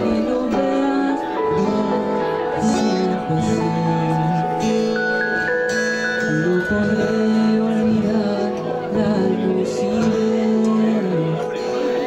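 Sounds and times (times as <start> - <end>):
acoustic guitar: 0.0 - 12.0
electronic keyboard long notes: 0.0 - 12.0.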